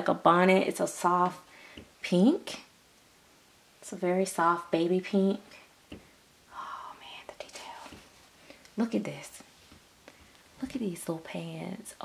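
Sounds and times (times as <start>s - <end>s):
soft whispering: 6.5s - 8.2s, 8.8s - 9.5s.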